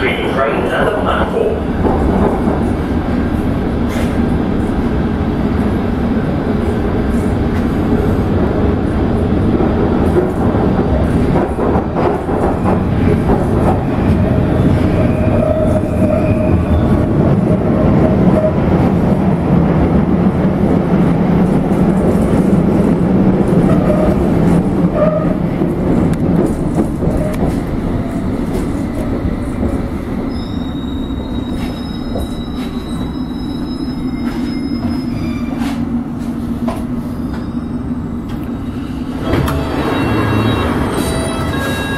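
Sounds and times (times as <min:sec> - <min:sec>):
train wheels rumbling on rail: 0:00.0 - 0:41.9
faint wheel squeal: 0:30.3 - 0:35.8.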